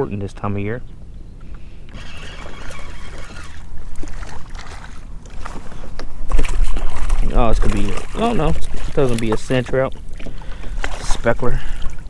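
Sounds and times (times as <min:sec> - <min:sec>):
water noise: 0:01.4 - 0:12.0
fishing reel clicking: 0:01.9 - 0:03.7.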